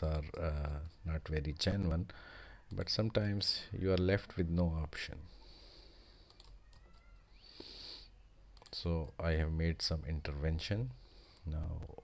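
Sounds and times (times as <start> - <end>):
computer keyboard clicks: 6.3 - 7.0.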